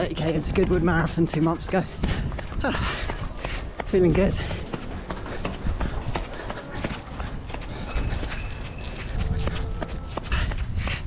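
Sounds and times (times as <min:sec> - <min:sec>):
running footsteps: 0:00.0 - 0:11.0
wind rumble on microphone: 0:00.0 - 0:11.0.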